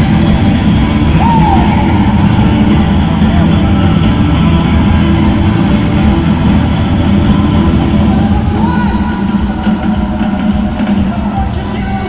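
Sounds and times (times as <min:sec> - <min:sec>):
distant live rock band: 0:00.0 - 0:12.0.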